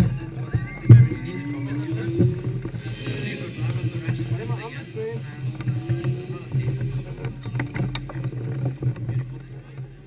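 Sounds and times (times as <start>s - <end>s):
people talking: 0.0s - 10.0s
race car engine running: 0.0s - 10.0s.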